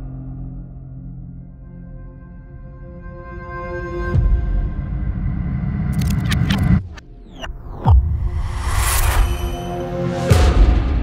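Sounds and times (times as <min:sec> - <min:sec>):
sharp clicks and scrapes: 0:05.9 - 0:07.0.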